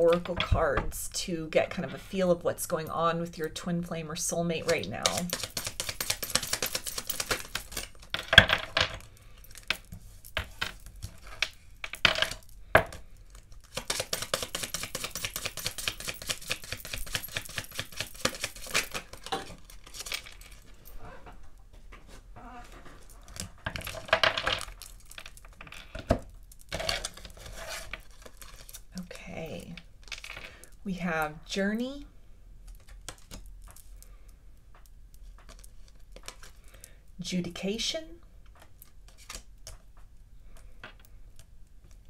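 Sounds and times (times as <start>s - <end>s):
cards clicking on table: 4.6s - 8.6s, 13.7s - 19.1s
cards being shuffled: 4.6s - 8.7s, 13.4s - 20.4s, 38.6s - 39.8s.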